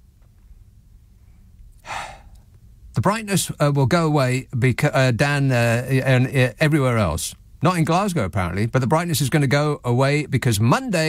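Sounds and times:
faint low hum: 0.0 - 11.0
man breathing into microphone: 1.3 - 2.4
man speaking: 3.0 - 11.0.

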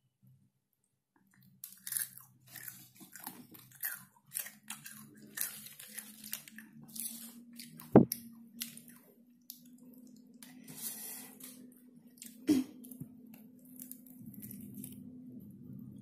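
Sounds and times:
chewing crispy fried chicken: 1.3 - 10.7, 11.4 - 15.2.

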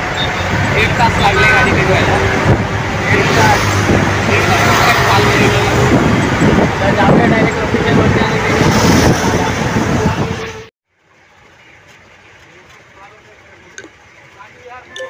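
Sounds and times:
loud vehicle noise: 0.0 - 15.0
man talking: 0.7 - 2.4, 3.0 - 3.7, 4.3 - 5.9, 6.8 - 10.4.

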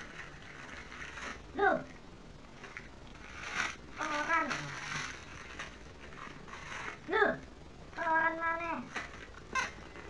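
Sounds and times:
paper rustling and crinkling: 2.6 - 7.1, 8.8 - 10.0.

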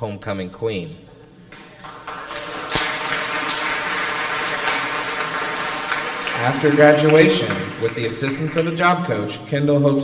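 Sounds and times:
audience clapping: 1.5 - 9.2.

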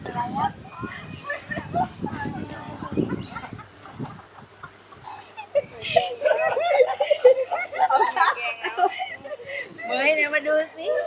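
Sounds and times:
indistinct background voices: 0.0 - 11.0.

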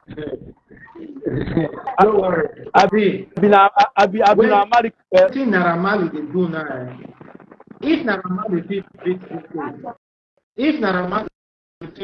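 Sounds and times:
man speaking indistinctly: 0.0 - 10.0.

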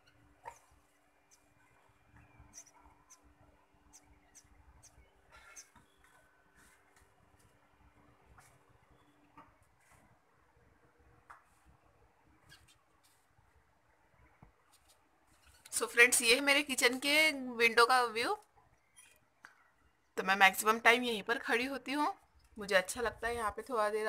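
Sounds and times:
faint high chirps: 0.0 - 6.6, 8.8 - 9.5.

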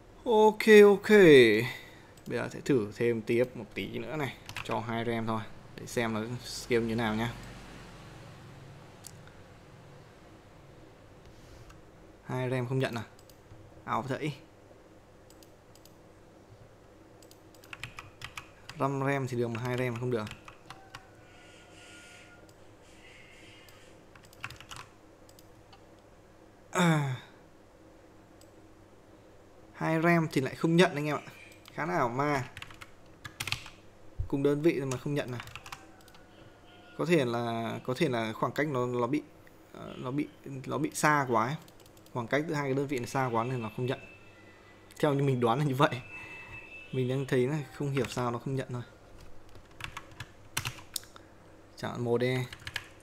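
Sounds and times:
computer keyboard clicks: 4.4 - 4.7, 17.2 - 18.8, 23.6 - 25.8, 32.5 - 33.8, 34.9 - 36.2, 49.5 - 51.2, 52.5 - 53.0.

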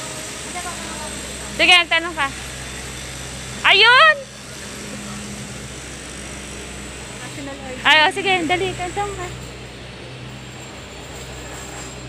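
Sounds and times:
vehicle engines idling: 0.0 - 12.0.

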